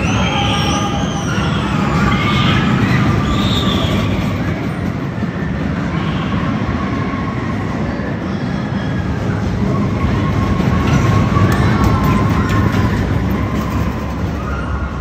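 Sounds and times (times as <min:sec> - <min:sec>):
roller coaster wheels rumbling: 0:00.0 - 0:15.0.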